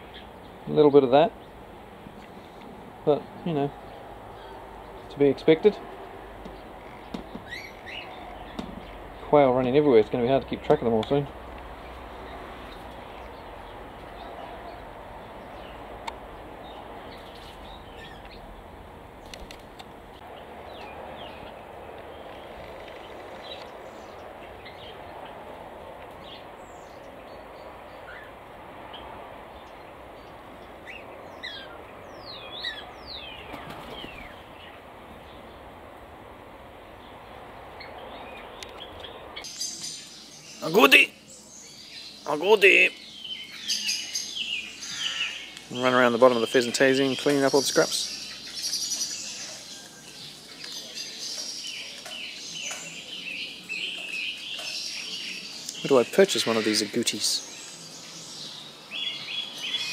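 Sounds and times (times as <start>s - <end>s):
small birds chirping: 0.0s - 36.0s, 36.6s - 59.9s
outdoor background hiss: 0.0s - 59.9s.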